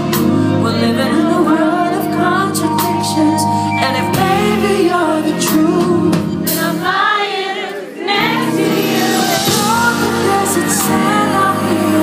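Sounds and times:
man singing: 0:00.0 - 0:06.6
soul band playing live: 0:00.0 - 0:07.4, 0:08.2 - 0:12.0.

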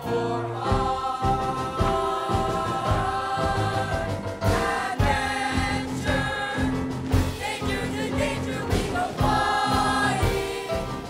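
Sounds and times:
boys' choir singing in harmony: 0:00.0 - 0:11.0.

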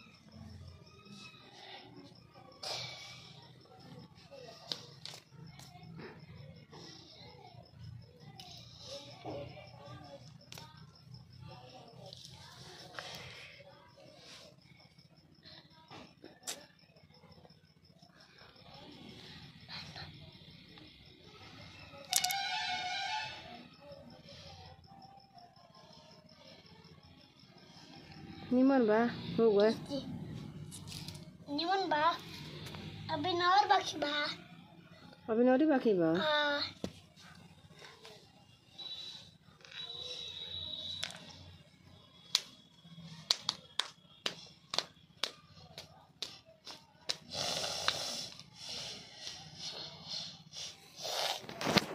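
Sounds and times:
child clapping hands: 0:42.3 - 0:42.6, 0:43.2 - 0:48.0.

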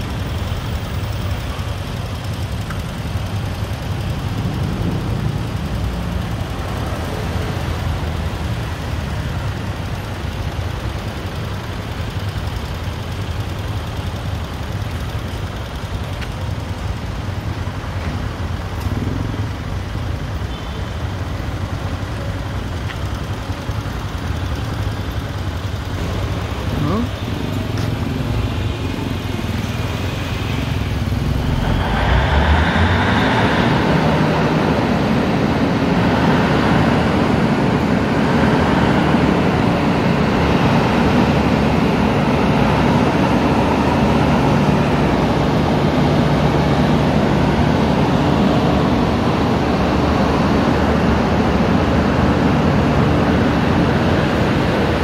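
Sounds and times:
traffic running past: 0:00.0 - 0:55.0.

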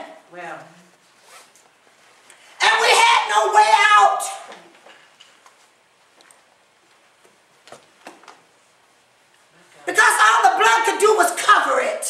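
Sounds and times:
person shouting: 0:02.6 - 0:04.6, 0:09.9 - 0:12.0.

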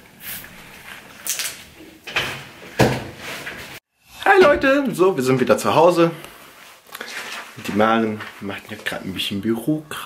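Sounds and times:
cupboard door being shut: 0:02.2 - 0:03.2.

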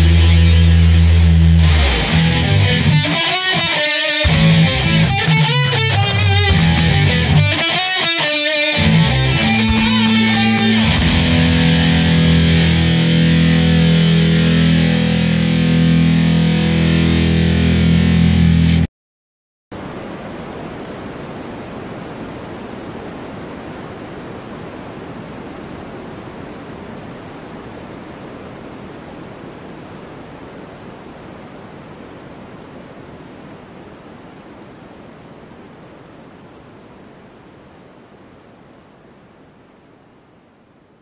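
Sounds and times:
rushing static noise: 0:00.0 - 0:18.9, 0:19.7 - 0:41.0.

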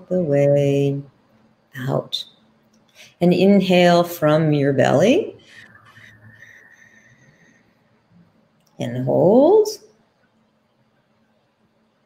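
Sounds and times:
slow whistling inhale: 0:05.4 - 0:08.0.

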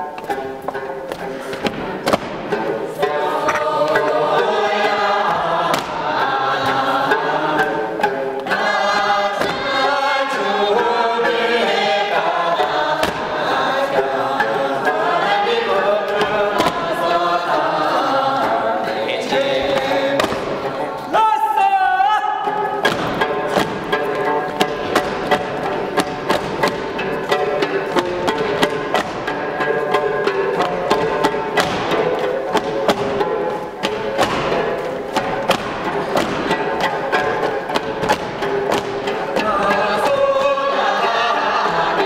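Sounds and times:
choir singing in a church: 0:00.0 - 0:42.0.

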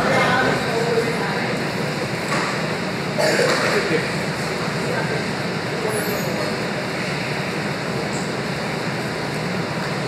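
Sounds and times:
rumbling hiss of large hall: 0:00.0 - 0:10.0.

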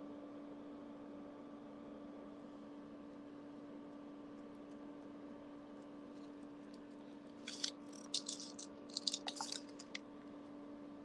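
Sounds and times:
craft beads clicking and rattling: 0:07.5 - 0:10.0.

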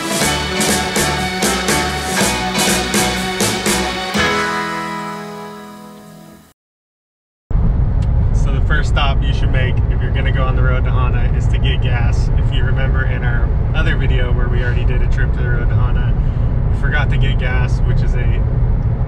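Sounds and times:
car cabin road rumble: 0:07.5 - 0:19.0
man talking: 0:08.4 - 0:16.2, 0:16.8 - 0:18.4.

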